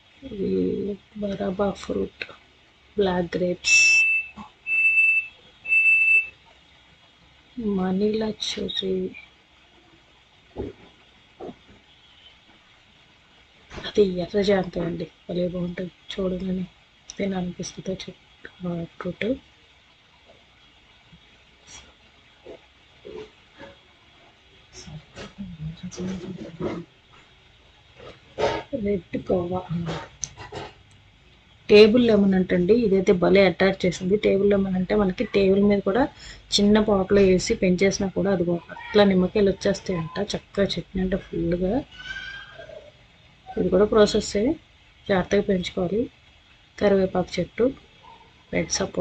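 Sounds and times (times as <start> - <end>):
high-pitched electronic beeps: 3.6 - 6.3.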